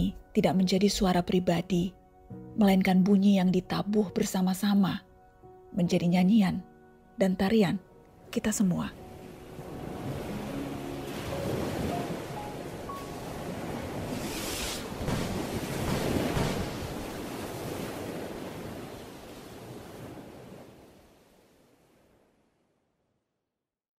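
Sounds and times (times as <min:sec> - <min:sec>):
ocean waves washing in: 0:09.0 - 0:22.8.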